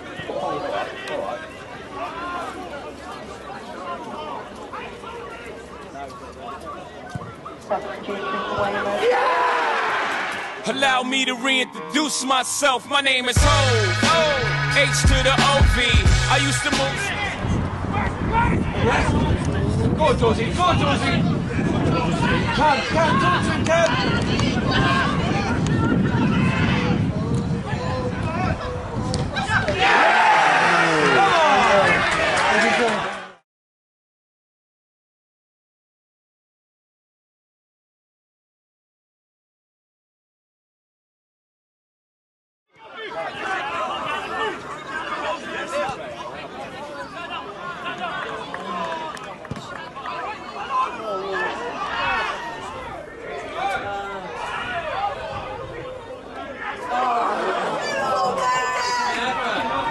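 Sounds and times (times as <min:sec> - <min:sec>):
crowd shouting and cheering: 0:07.0 - 0:33.4, 0:42.7 - 0:59.9.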